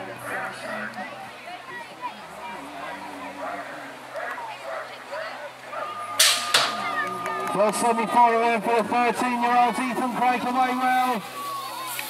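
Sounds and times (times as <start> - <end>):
start gate clanging: 6.0 - 7.3.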